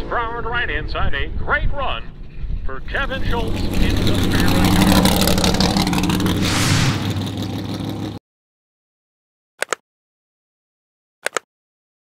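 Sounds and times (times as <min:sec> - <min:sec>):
car engine running loudly: 0:02.2 - 0:08.2
brief rushing burst: 0:04.5 - 0:07.6
double mouse click: 0:09.6 - 0:09.8, 0:11.2 - 0:11.5.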